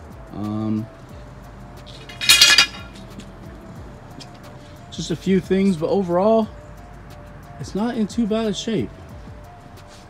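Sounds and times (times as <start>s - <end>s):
clinking metal or glass clatter: 1.9s - 3.3s.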